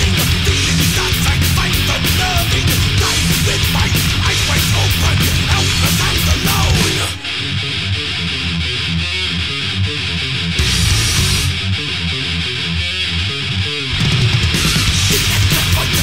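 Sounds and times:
bass and drums: 0.0 - 16.0
electric guitar riffing: 0.0 - 16.0.

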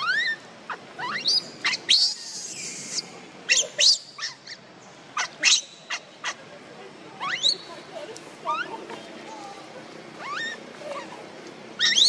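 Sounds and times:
baby monkey squealing: 0.0 - 4.6, 5.2 - 6.4, 7.2 - 7.7, 10.2 - 10.6, 11.8 - 12.0.

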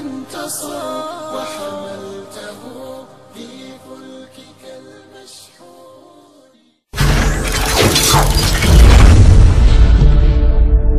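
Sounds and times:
glass shattering: 7.0 - 9.4.

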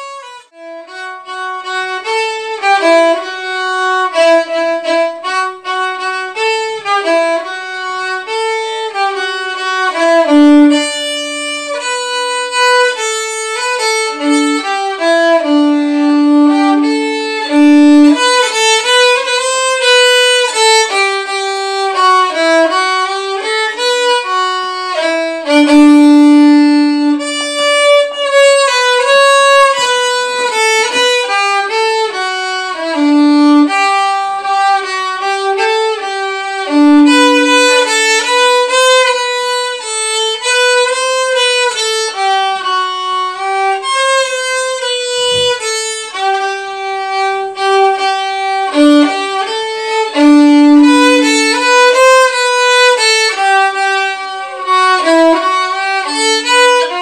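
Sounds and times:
solo violin melody: 0.0 - 57.0.

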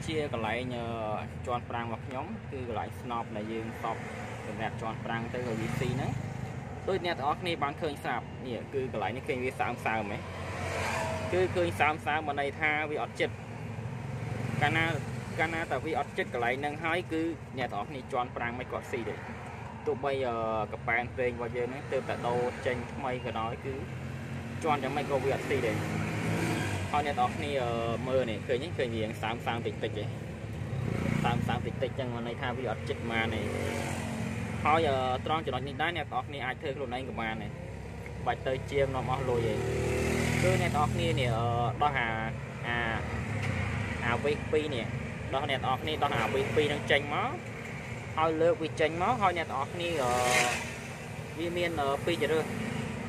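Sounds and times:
man talking: 0.0 - 10.3, 11.2 - 13.4, 14.5 - 23.9, 24.6 - 25.9, 26.6 - 30.2, 31.1 - 33.8, 34.6 - 37.6, 38.2 - 43.2, 44.0 - 47.4, 48.2 - 50.6, 51.4 - 52.6.

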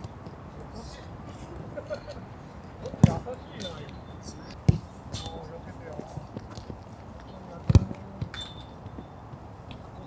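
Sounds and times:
football kick thuds: 3.0 - 3.3, 4.6 - 5.3, 7.7 - 8.4.

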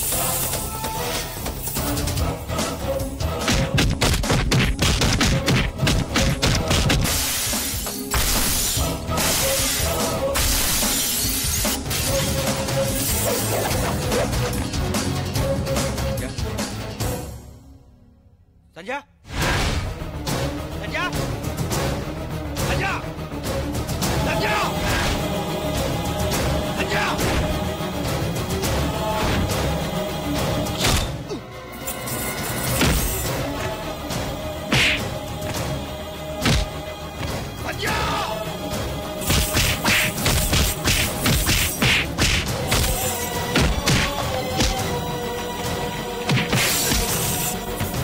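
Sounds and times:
film score music: 0.0 - 48.0
glass shattering: 7.1 - 13.5.

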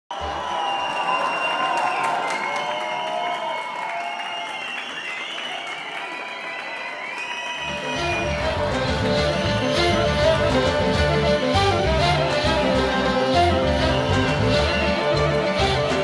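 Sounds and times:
audience applauding and cheering: 0.1 - 16.0
low music notes: 7.7 - 16.0
music with sliding high tones: 7.7 - 16.0.

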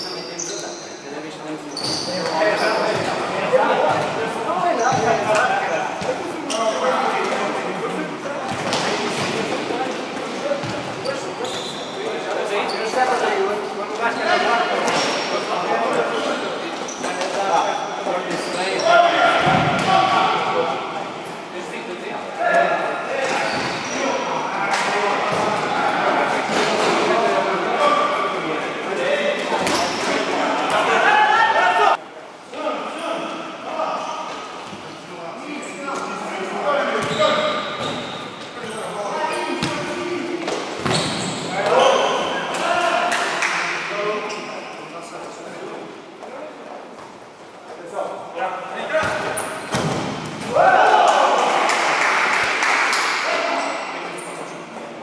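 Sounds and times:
players shouting and cheering: 29.7 - 32.0, 50.2 - 53.7.

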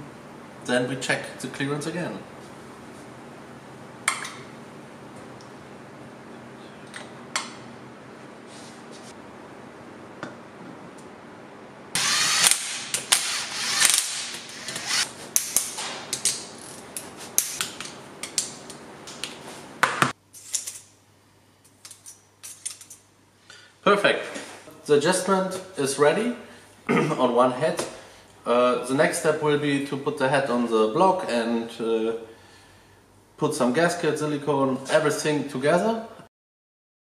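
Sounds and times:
steady hum: 0.0 - 20.2
cordless drill whirring: 12.0 - 15.1.

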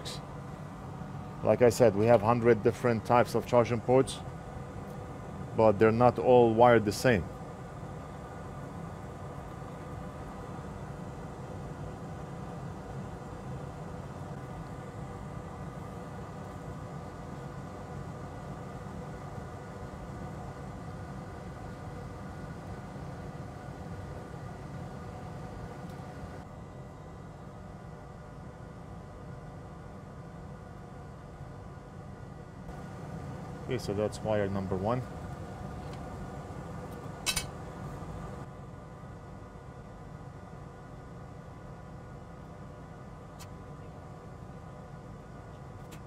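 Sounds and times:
background hum and hiss: 0.0 - 46.0.

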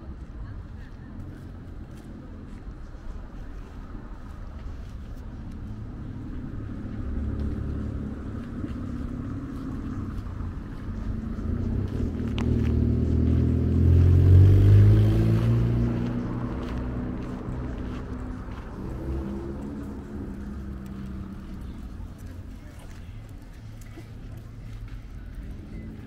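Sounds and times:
vehicle engine driving past: 4.2 - 26.0.

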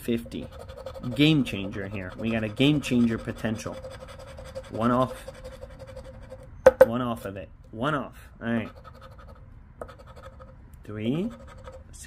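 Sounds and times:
token scraping scratch card: 0.1 - 6.5, 8.6 - 12.0.

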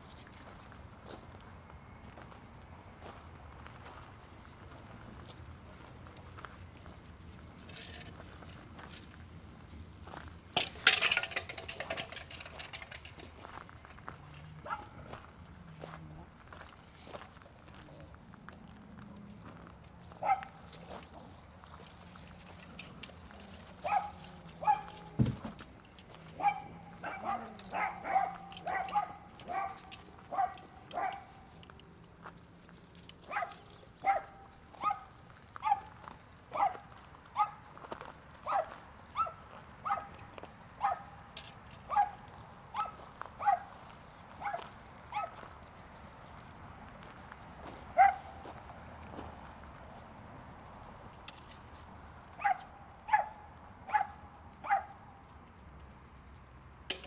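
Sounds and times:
dog barking: 14.6 - 15.0, 20.2 - 20.5, 23.8 - 25.0, 26.4 - 31.3, 33.3 - 35.9, 36.5 - 36.8, 37.4 - 37.6, 38.5 - 40.2, 40.8 - 41.0, 41.9 - 42.2, 42.8 - 43.6, 44.4 - 45.4, 48.0 - 48.3, 52.4 - 55.0.

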